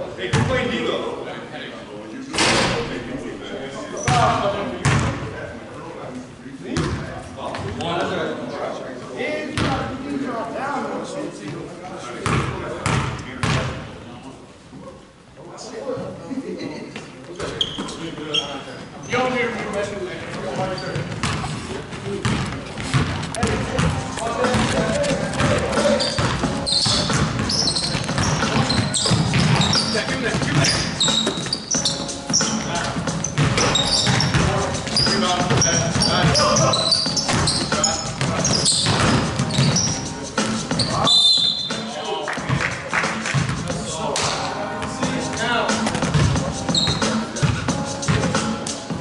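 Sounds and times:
voices: 15.6s - 49.0s
basketball bouncing on hardwood: 22.2s - 31.5s, 33.4s - 34.5s, 37.3s - 39.8s
background music: 23.3s - 49.0s.

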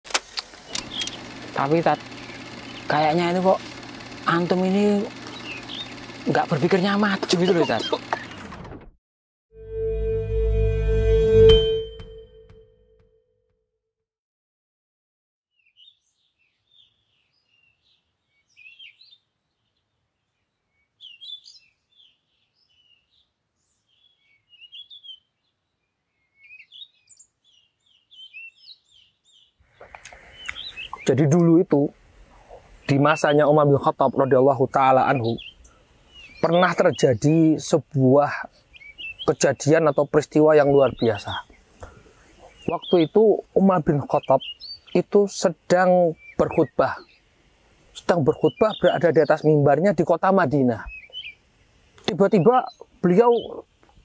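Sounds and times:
songbirds chirping: 0.7s - 8.5s, 15.5s - 54.0s.

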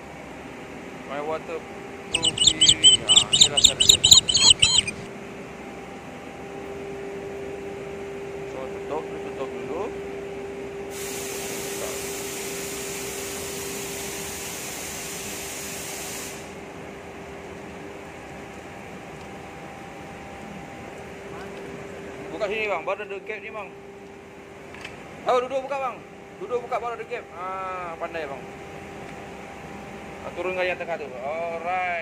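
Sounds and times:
steady hum: 2.1s - 5.1s
water spraying hiss: 10.9s - 16.6s.

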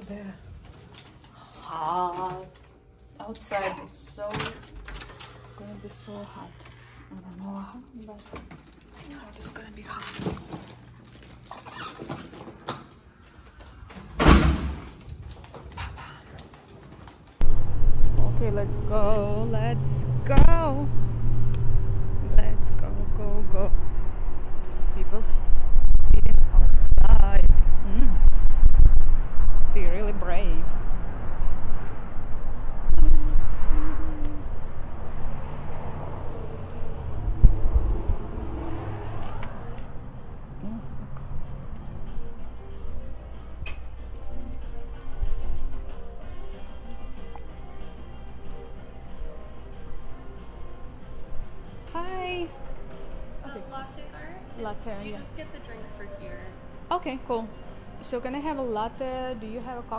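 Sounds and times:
door swinging shut with thud: 14.1s - 15.0s
road traffic: 16.5s - 59.9s
wind rumbling on microphone: 17.4s - 41.4s.

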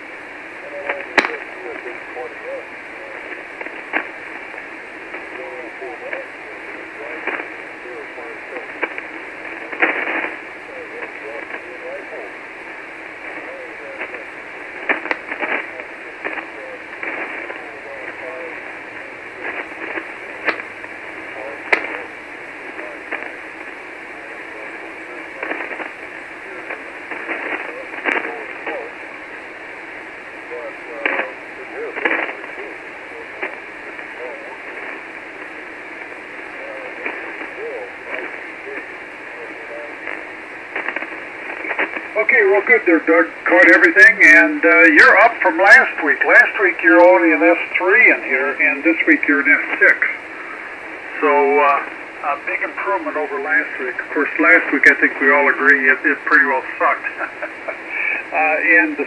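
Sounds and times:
radio band hiss: 0.0s - 59.0s
static clicks and crashes: 0.0s - 59.0s
weak radio voice: 0.0s - 59.0s.

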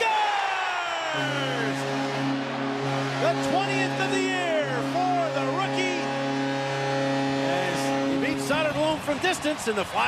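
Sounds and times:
crowd cheering: 0.0s - 10.0s
goal horn blaring: 1.1s - 9.1s.

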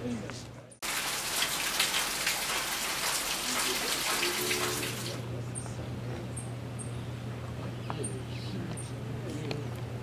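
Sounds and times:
steady rain falling: 0.8s - 5.2s.

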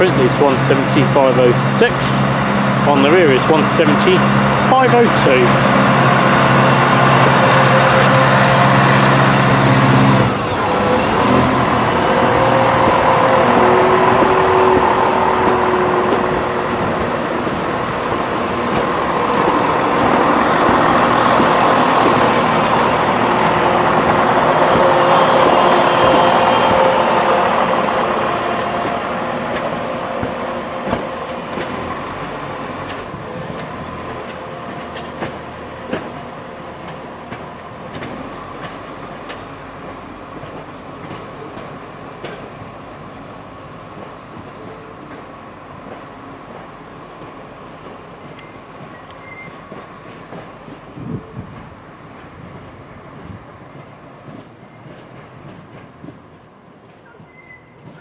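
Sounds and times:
diesel train engine whining: 0.0s - 58.0s.

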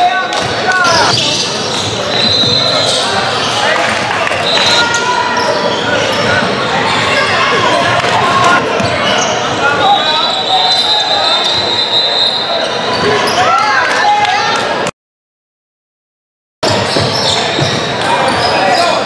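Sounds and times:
people calling and chatting: 0.0s - 14.9s, 16.6s - 19.0s
sneaker squeaks: 0.8s - 3.8s, 4.4s - 13.8s, 16.6s - 19.0s.

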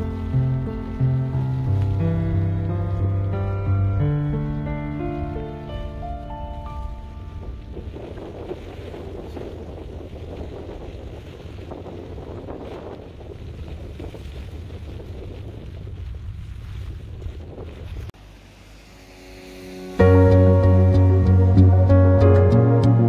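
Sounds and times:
soft music: 0.0s - 8.4s, 18.2s - 23.0s
rumbling rushing noise: 0.0s - 23.0s.

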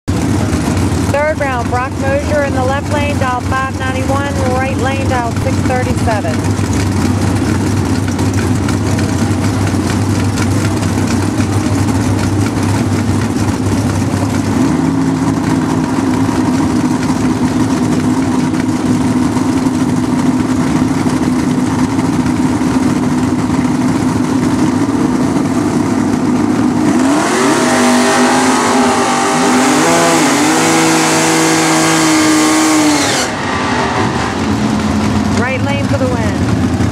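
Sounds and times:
cars accelerating with gear shifts: 0.1s - 36.9s
drag racing engines revving: 0.1s - 36.9s.

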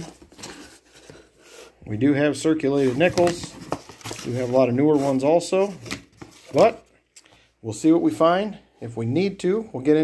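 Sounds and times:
cardboard flaps rustling: 2.6s - 6.8s.

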